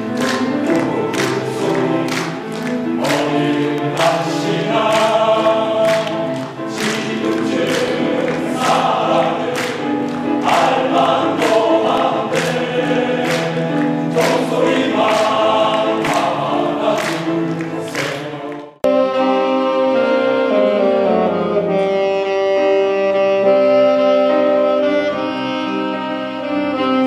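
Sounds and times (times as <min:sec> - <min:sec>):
men's choir singing: 0:00.0 - 0:18.9
grand piano chords: 0:00.0 - 0:27.0.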